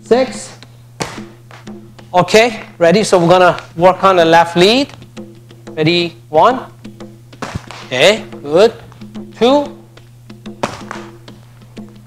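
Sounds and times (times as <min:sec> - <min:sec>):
background music: 0:00.0 - 0:12.0
kick striking a pad: 0:01.0 - 0:01.8, 0:07.4 - 0:08.0, 0:10.5 - 0:11.4.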